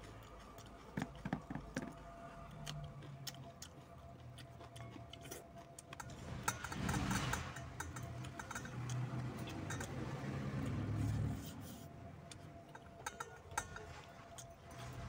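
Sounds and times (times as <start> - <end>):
chewing: 0.0 - 15.0
fingers mixing rice in a metal bowl: 5.3 - 15.0
ring pinging against metal bowl: 6.0 - 10.2, 12.6 - 15.0.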